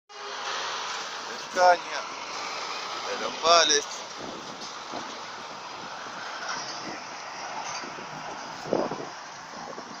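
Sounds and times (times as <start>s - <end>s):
truck passing by: 0.1s - 10.0s.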